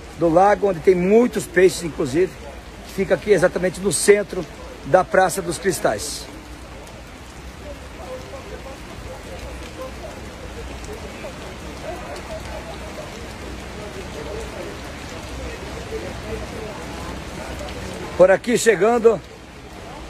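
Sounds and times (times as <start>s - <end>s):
rain on paving and pond: 0.0s - 20.0s.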